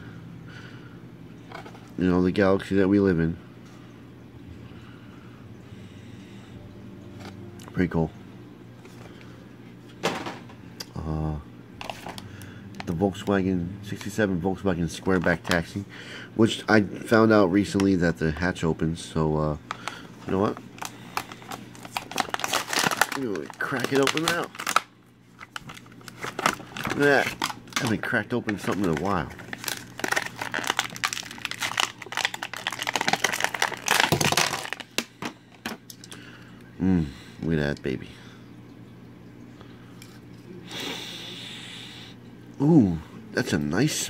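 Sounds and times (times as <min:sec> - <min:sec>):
faint low hum: 0:00.0 - 0:44.0
plastic blister pack crinkling: 0:19.6 - 0:36.2.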